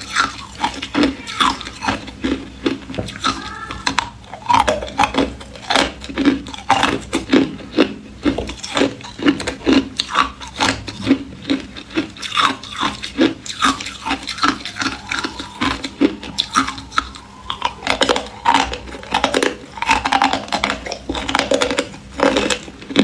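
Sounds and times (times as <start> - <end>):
ice being chewed: 0.0 - 23.0.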